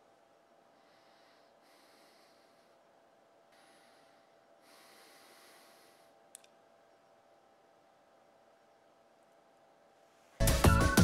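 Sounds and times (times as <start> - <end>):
faint breaths exhaled: 0.6 - 6.3
sharp click: 6.3 - 6.6.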